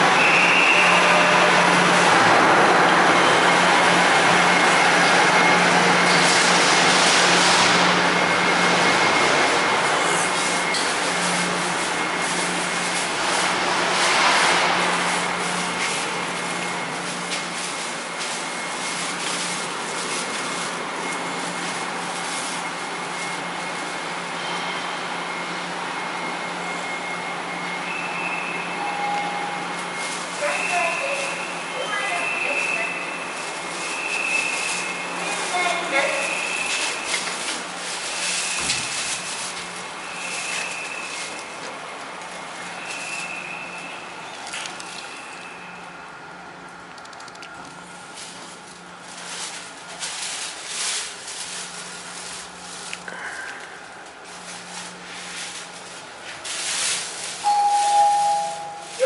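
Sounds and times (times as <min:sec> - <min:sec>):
ship machinery hum: 0:00.0 - 0:27.9
faint high steady tone: 0:57.4 - 0:59.0
high beep: 0:57.4 - 0:59.0.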